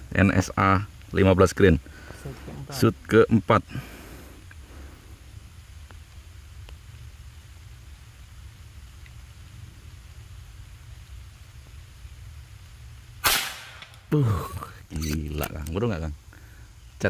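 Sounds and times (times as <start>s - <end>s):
faint hiss: 0.0s - 17.0s
faint ticks: 0.8s - 1.2s, 4.4s - 13.0s.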